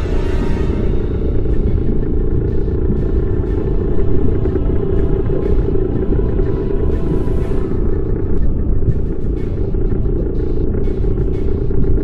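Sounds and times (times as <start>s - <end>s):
deep underwater engine rumble: 0.0s - 12.0s
soundtrack music: 0.0s - 12.0s.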